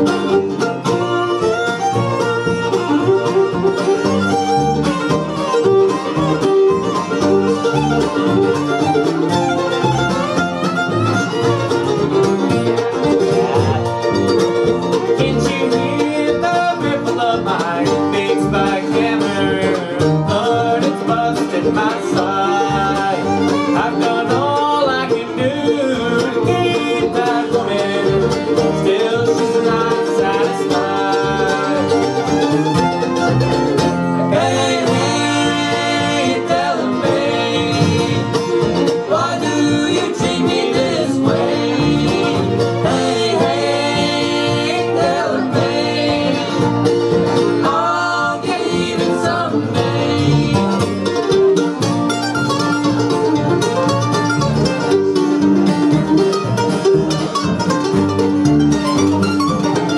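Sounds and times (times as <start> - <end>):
acoustic guitar: 0.0 - 59.9
fiddle: 0.0 - 59.9
mandolin: 0.0 - 59.9
upright bass: 0.0 - 59.9.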